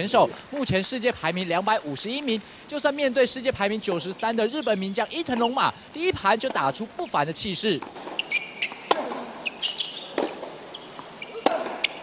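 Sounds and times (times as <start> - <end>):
shoes squeaking on court: 4.4 - 5.7, 7.8 - 12.0
racket hitting tennis ball: 7.8 - 12.0.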